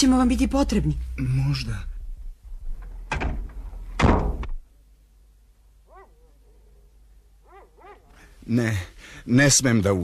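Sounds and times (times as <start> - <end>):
car door slam: 3.1 - 4.6.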